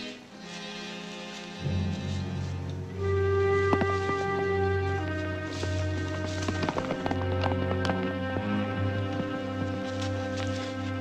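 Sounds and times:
music with long held notes: 0:00.0 - 0:11.0
horse hoofbeats on dirt: 0:03.0 - 0:11.0.

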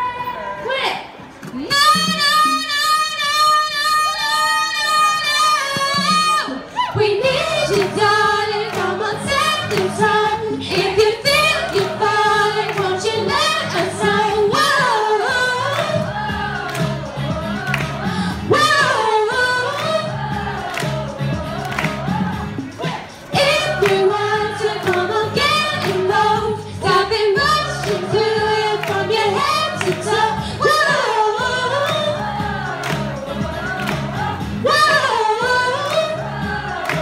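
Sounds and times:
woman singing into a microphone: 0:01.5 - 0:37.0
pop backing track: 0:07.2 - 0:37.0.

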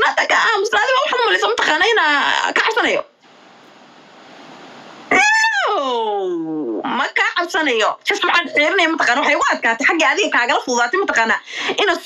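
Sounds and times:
faint hiss: 0:03.2 - 0:06.1
woman wailing: 0:05.1 - 0:06.5.

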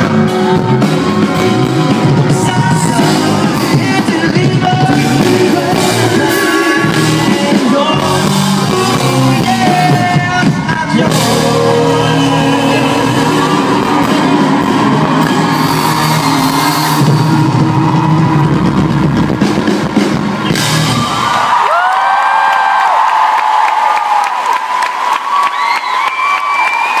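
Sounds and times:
live band playing: 0:00.0 - 0:21.9
audience cheering and screaming: 0:00.0 - 0:27.0.

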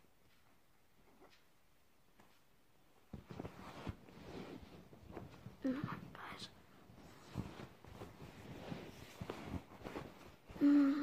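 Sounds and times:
rustling at microphone: 0:03.1 - 0:10.6
boy whispering: 0:05.6 - 0:06.6, 0:10.6 - 0:11.0
boy humming: 0:10.5 - 0:11.0.

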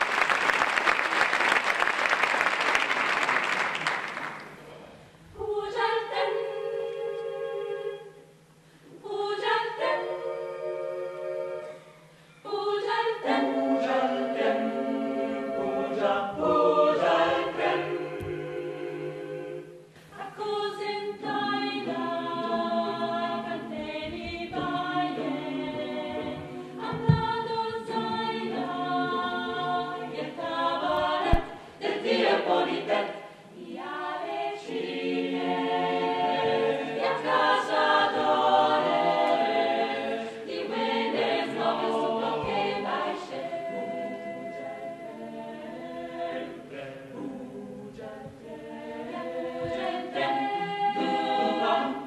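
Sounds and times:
mixed choir singing a cappella: 0:05.2 - 0:52.0.

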